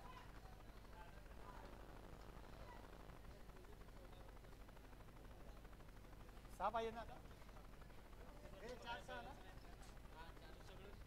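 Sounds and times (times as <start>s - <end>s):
faint distant talking: 0.0s - 11.0s.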